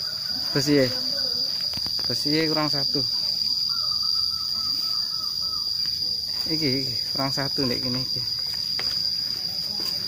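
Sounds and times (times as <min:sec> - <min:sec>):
high-pitched insect drone: 0:00.0 - 0:10.0.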